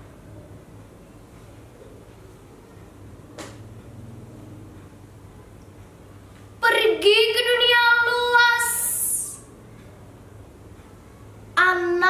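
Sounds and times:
girl reciting poetry: 6.6s - 9.5s, 11.5s - 12.0s.

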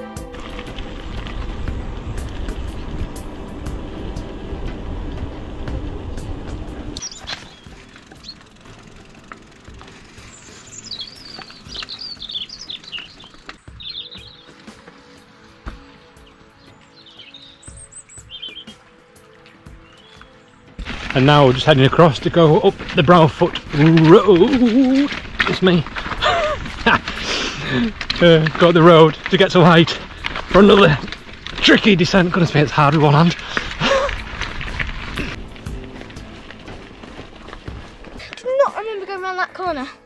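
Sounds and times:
bike tyre rumble: 0.0s - 38.6s
faint music: 0.0s - 40.0s
small birds chirping: 5.0s - 39.7s.

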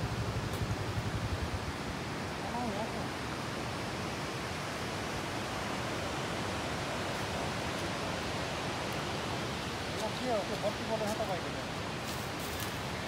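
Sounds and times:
river rushing: 0.0s - 13.0s.

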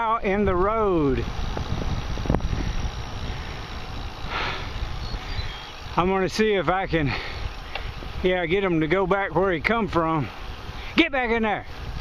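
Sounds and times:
bicycle road rumble: 0.0s - 12.0s
wind over microphone: 0.0s - 12.0s.

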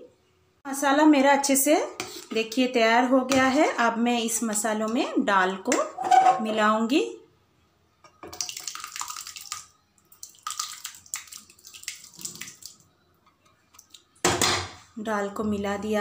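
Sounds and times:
liquid pouring and sloshing: 8.2s - 12.9s, 13.5s - 14.2s.

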